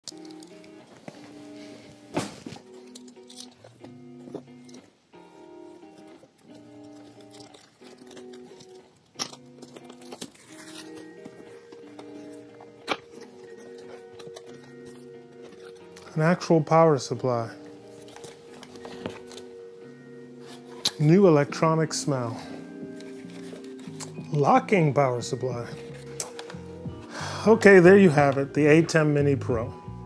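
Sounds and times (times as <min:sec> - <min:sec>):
instrumental background music: 0:00.0 - 0:30.0
cardboard box packaging crinkling: 0:05.4 - 0:16.4, 0:17.4 - 0:19.5, 0:22.6 - 0:24.3.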